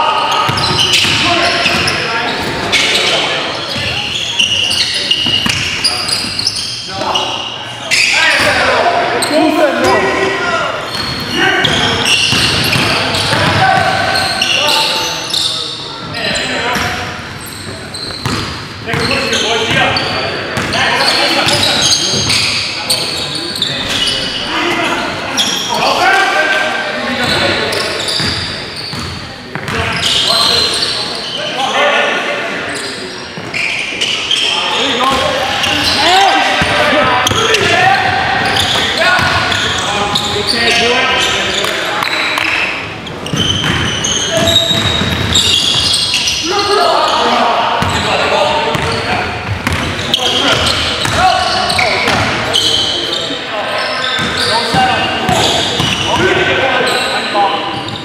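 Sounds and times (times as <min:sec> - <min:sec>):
players calling out: 0:00.0 - 0:58.0
basketball bouncing on hardwood floor: 0:43.3 - 0:43.9.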